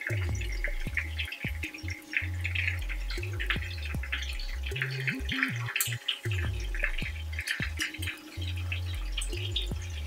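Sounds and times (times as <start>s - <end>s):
background music with bass line: 0.0s - 10.0s
fish sizzling in hot oil: 0.0s - 10.0s.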